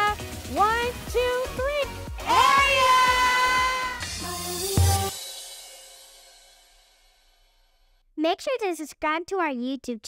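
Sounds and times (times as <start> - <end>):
drum hit: 2.2 - 7.6
cymbal crash ringing: 4.0 - 7.9.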